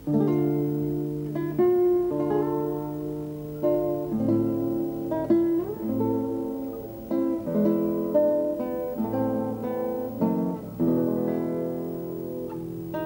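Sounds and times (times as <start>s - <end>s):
guitars playing chords and melody: 0.0s - 13.0s.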